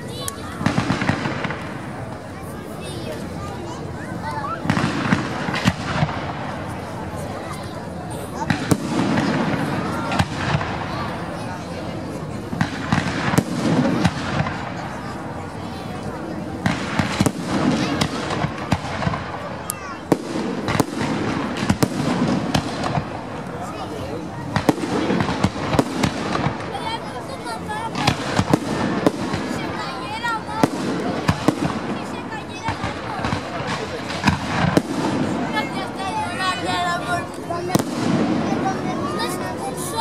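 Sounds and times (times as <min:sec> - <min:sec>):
fireworks bursting and crackling: 0:00.0 - 0:40.0
sharp fireworks bangs: 0:00.2 - 0:02.6, 0:04.1 - 0:39.8.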